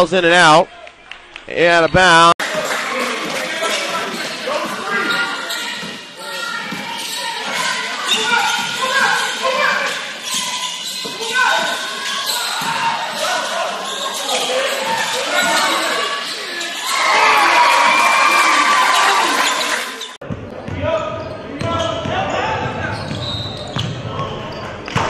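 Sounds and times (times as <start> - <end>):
crowd talking and calling out: 0.0 - 24.8.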